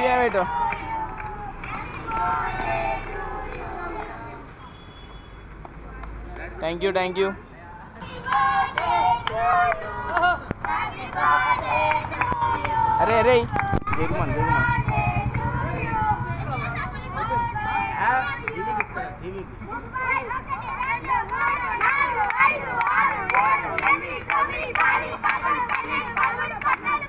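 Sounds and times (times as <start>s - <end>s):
people talking and calling out: 0.0s - 4.7s, 5.7s - 27.0s
boys chattering and calling out: 12.8s - 24.6s.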